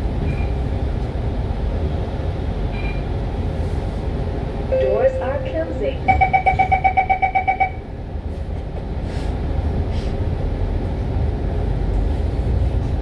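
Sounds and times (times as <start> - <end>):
bus engine rumble: 0.0 - 13.0
road noise: 0.0 - 13.0
rapid electronic beeping: 6.0 - 7.8.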